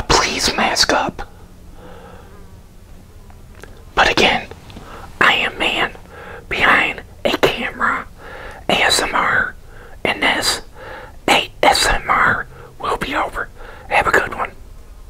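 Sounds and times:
man whispering: 0.0s - 1.3s, 3.9s - 14.6s.

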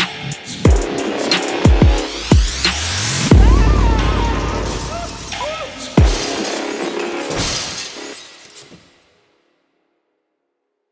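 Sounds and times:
loud low electronic boom: 3.2s - 5.7s
noisy ringing crash: 3.3s - 8.1s.

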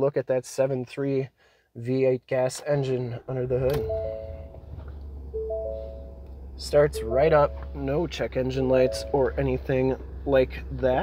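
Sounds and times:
engine idling: 3.3s - 11.0s
dashboard warning chime: 3.5s - 9.9s.

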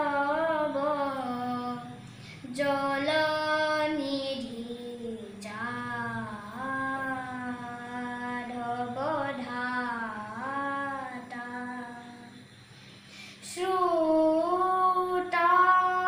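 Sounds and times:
boy singing unaccompanied: 0.0s - 12.5s, 13.4s - 16.0s.

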